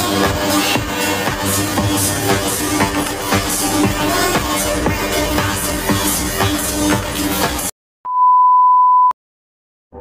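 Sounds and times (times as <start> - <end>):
electronic music with a beat: 0.0 - 7.7.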